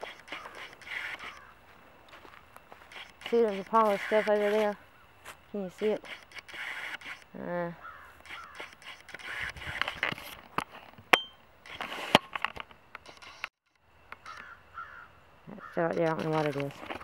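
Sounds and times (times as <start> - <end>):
camera handling rustling: 0.0 - 1.5, 2.1 - 4.8, 5.8 - 7.3, 8.2 - 13.5, 16.1 - 17.0
sharp clicks: 0.0 - 1.5, 5.8 - 7.4, 8.2 - 10.7, 16.0 - 17.0.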